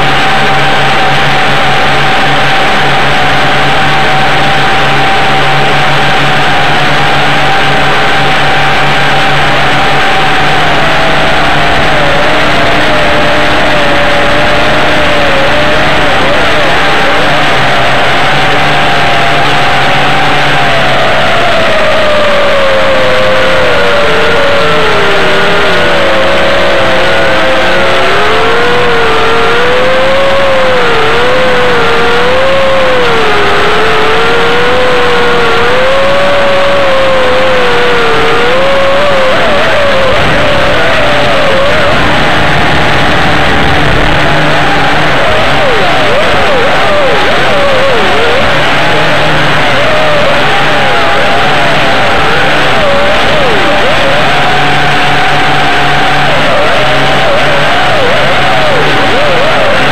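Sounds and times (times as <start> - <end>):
drone propellers whirring: 0.0 - 59.9.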